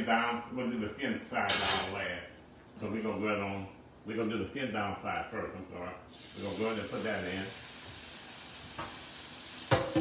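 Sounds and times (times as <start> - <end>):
fish sizzling in frying pan: 6.1 - 10.0.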